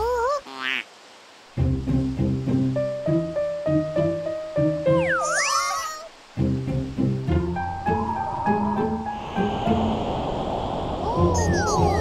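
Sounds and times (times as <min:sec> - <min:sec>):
cartoon music: 0:04.9 - 0:06.1
high swooping animal call effect: 0:05.0 - 0:06.1.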